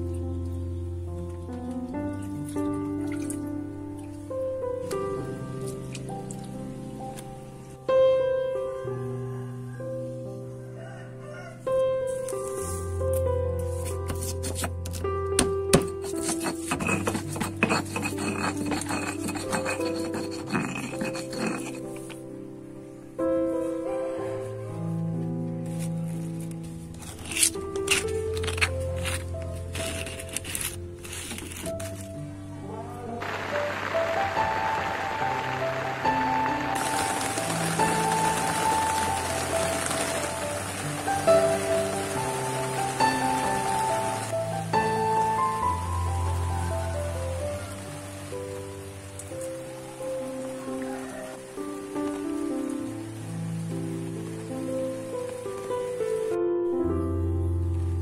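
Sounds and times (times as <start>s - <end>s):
soft instrumental music: 0.0s - 58.0s
stirring rustling hiss: 15.9s - 22.4s, 33.2s - 56.3s.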